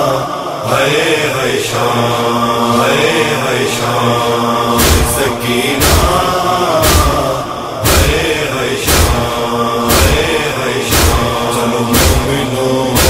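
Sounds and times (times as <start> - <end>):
men chanting: 0.0 - 13.0
chest-beating rhythm: 4.8 - 13.0.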